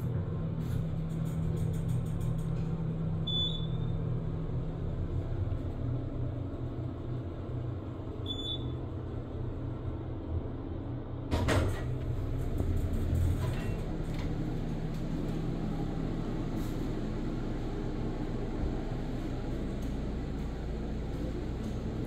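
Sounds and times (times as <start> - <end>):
elevator doors opening: 0.0 - 4.2, 11.3 - 22.0
elevator hum: 0.0 - 22.0.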